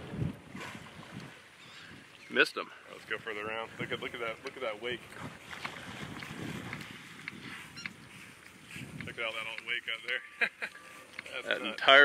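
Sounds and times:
wind on microphone rumble: 0:00.0 - 0:02.1, 0:04.9 - 0:09.3.

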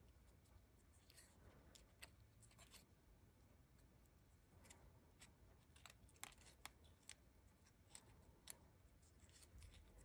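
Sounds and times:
paper crinkling and crackling: 0:04.6 - 0:10.0.

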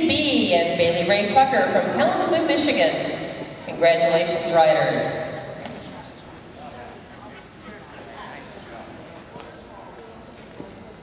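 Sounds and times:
murmur of voices: 0:02.9 - 0:11.0.

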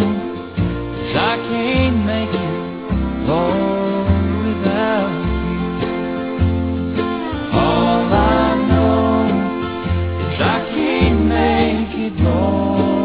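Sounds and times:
acoustic guitar: 0:00.0 - 0:13.0
band playing gospel music: 0:00.0 - 0:13.0
steady bass line: 0:00.0 - 0:13.0.

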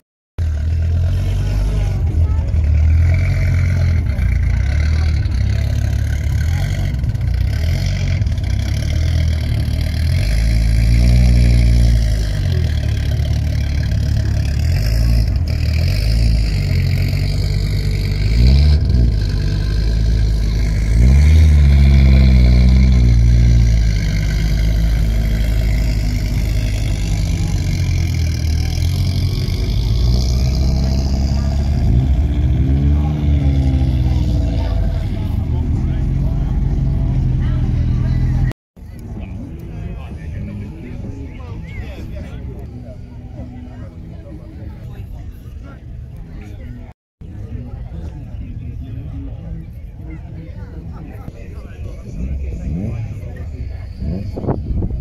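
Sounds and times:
car engine idling and revving: 0:00.4 - 0:55.0.

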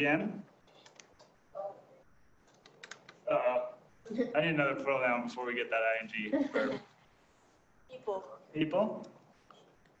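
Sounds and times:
keyboard keystrokes: 0:02.5 - 0:03.2.

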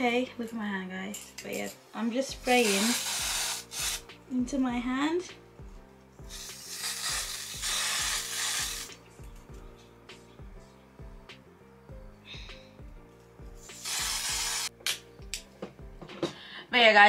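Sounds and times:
aerosol spray hissing: 0:02.4 - 0:04.1, 0:06.3 - 0:09.0, 0:13.6 - 0:14.7.

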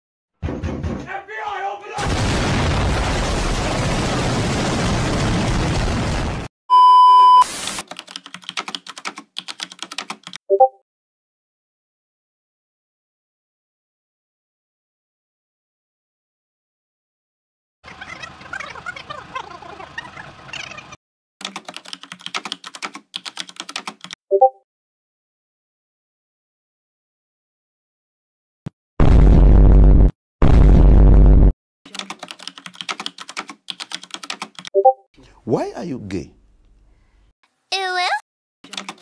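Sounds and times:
loud distorted blast: 0:02.0 - 0:06.5, 0:29.0 - 0:31.5.

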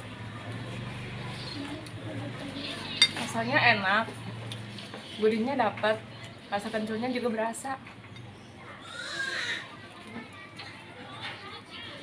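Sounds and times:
quiet indistinct talking: 0:00.0 - 0:12.0.

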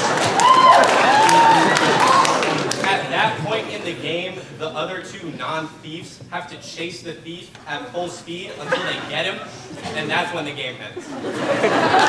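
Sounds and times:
audience clapping: 0:00.0 - 0:03.1
audience laughing: 0:01.3 - 0:05.5, 0:08.4 - 0:12.0.

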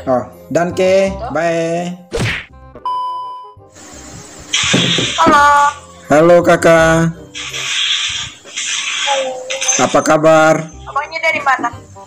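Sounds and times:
high-pitched test-tone beep: 0:02.9 - 0:03.6
loud static burst: 0:03.8 - 0:05.5, 0:07.4 - 0:10.0
tv static hiss: 0:03.8 - 0:05.8, 0:07.4 - 0:11.7.

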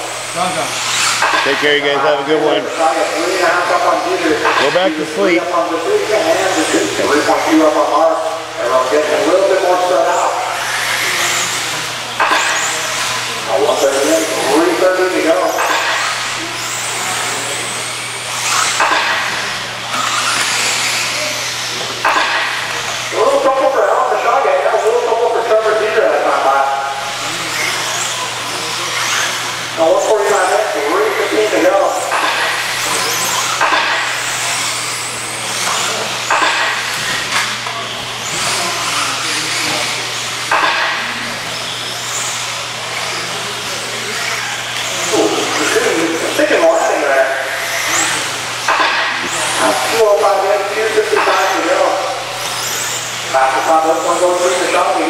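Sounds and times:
radio-controlled cars racing: 0:00.0 - 0:55.0
race announcer's voice: 0:01.4 - 0:11.6, 0:13.4 - 0:16.0, 0:22.9 - 0:27.7, 0:28.7 - 0:32.1, 0:45.0 - 0:48.3, 0:49.4 - 0:55.0.

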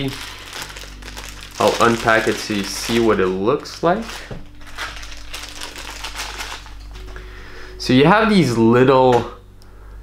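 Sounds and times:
packaging clicking and rustling: 0:00.0 - 0:07.2.

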